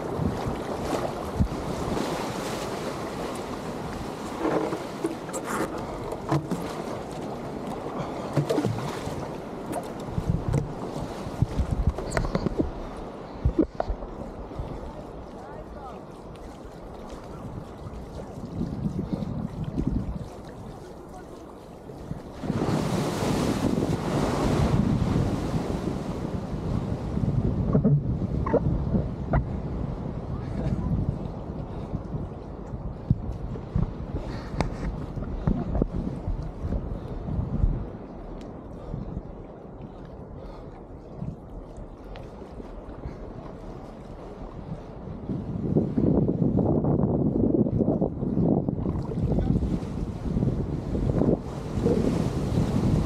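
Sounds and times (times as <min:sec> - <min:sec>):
wind buffeting microphone: 0:00.0 - 0:15.9, 0:16.7 - 0:53.0
water sloshing against board: 0:00.0 - 0:25.8
rushing water and surf: 0:00.0 - 0:53.0.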